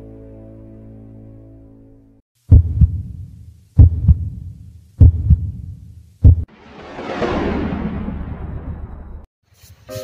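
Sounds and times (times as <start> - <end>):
heartbeat double thumps: 2.5 - 6.5.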